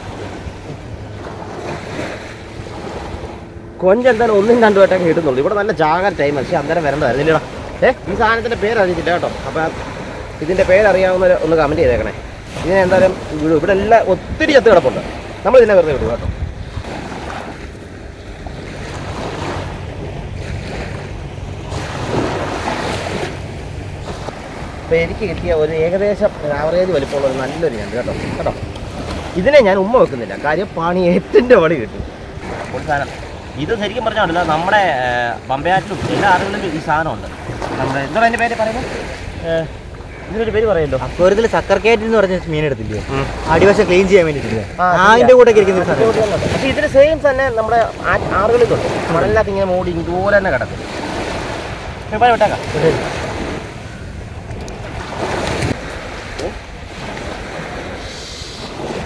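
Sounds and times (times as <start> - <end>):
sea waves washing on beach: 0.0 - 59.0
wind buffeting microphone: 0.0 - 59.0.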